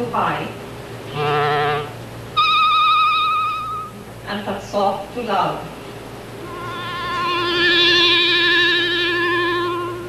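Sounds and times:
long clarinet note with vibrato: 1.1 - 4.1, 6.4 - 10.0.

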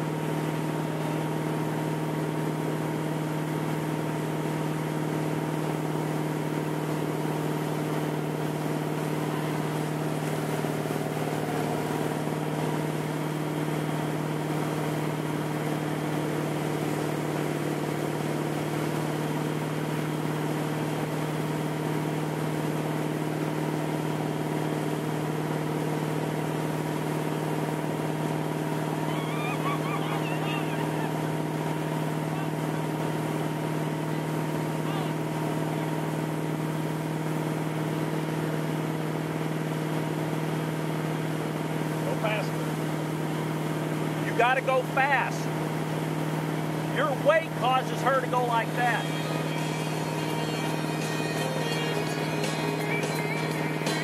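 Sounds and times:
motorboat engine running: 0.0 - 54.0
wake water rushing: 0.1 - 39.2, 40.0 - 54.0.

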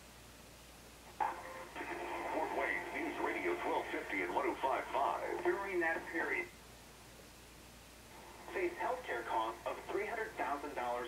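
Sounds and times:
radio announcer talking through speaker: 1.2 - 6.6, 8.4 - 11.0.

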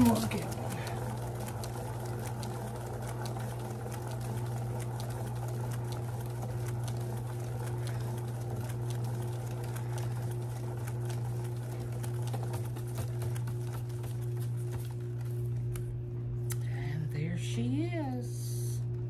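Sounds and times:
paint spinner motor humming: 0.0 - 19.0.

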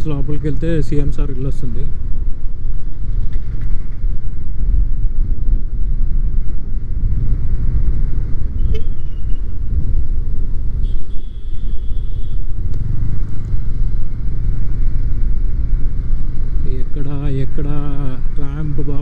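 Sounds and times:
wind rumble on microphone: 0.0 - 19.0
motorcycle engine running: 1.9 - 18.8.

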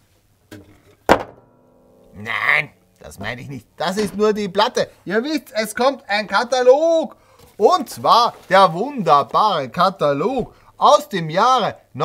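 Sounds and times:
board thudding on tabletop: 1.1 - 1.5
faint ringing: 1.3 - 5.0.

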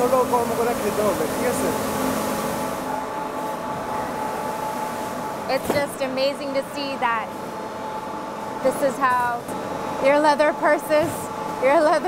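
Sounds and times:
factory machinery drone: 0.0 - 12.0
thin steady whine: 0.0 - 12.0.

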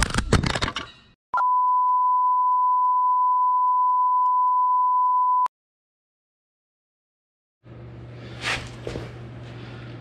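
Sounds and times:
steady test-tone beep: 1.4 - 5.5.

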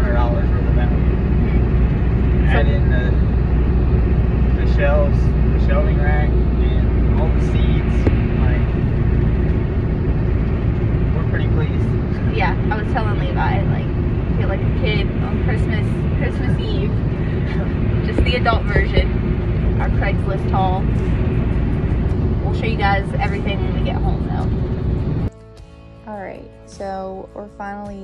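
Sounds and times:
people talking: 0.0 - 1.7, 2.4 - 3.3, 4.6 - 8.7, 11.2 - 19.2, 19.8 - 20.9, 22.4 - 24.5, 26.1 - 28.0
vehicle road and engine rumble: 0.0 - 28.0.

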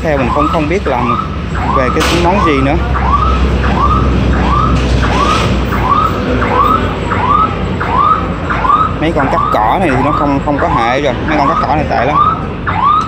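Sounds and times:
electronic alarm chirping: 0.2 - 13.0.

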